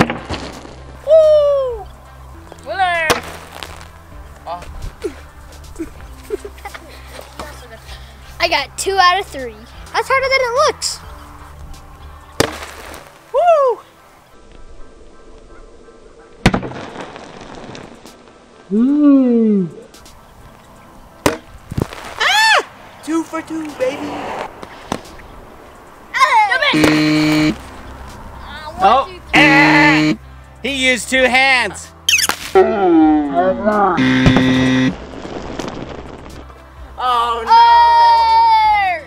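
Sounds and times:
water balloon bursting: 12.4s - 13.1s, 26.8s - 27.6s, 32.1s - 32.6s, 34.0s - 36.4s
electronic buzzer tone: 26.8s - 27.6s, 29.4s - 30.2s, 34.0s - 35.0s.

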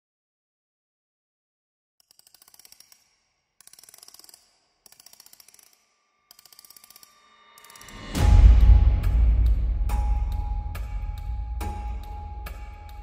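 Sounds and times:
electronic ticking clicks: 2.0s - 8.3s
loud music: 8.1s - 13.0s.

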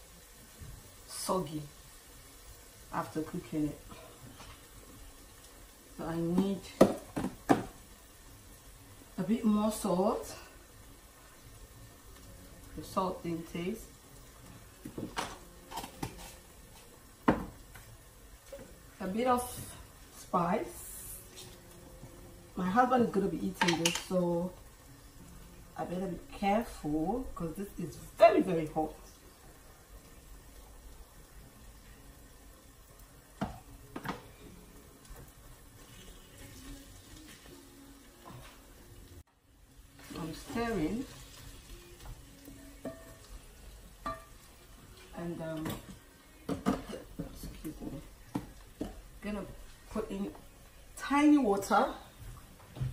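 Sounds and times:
food sizzling in a pan: 0.0s - 52.9s
containers knocking on counter: 17.2s - 17.5s
spoon knocking in a pan: 33.4s - 34.3s, 42.8s - 43.3s, 44.0s - 44.4s.

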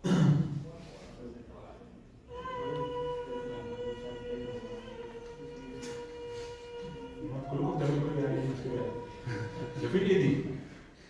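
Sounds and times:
person singing high vowel: 2.3s - 10.7s.

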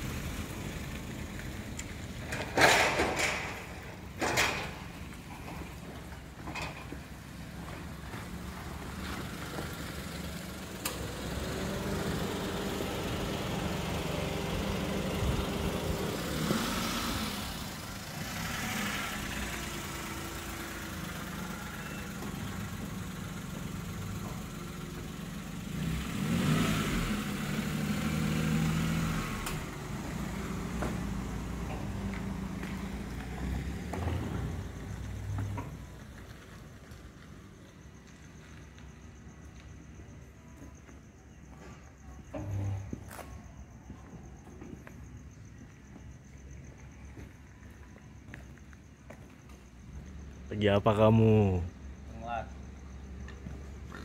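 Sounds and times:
car engines passing slowly: 0.0s - 54.0s.

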